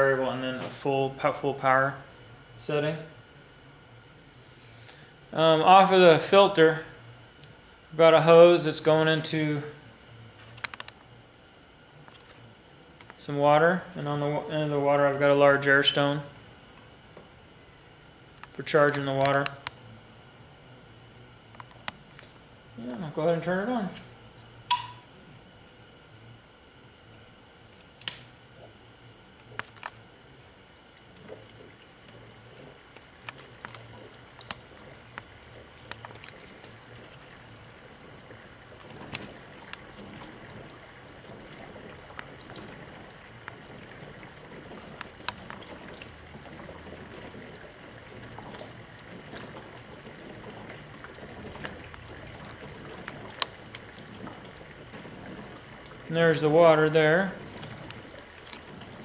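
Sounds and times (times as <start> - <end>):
switch click: 24.7 - 25.0
water bubbling and gurgling: 30.4 - 59.0.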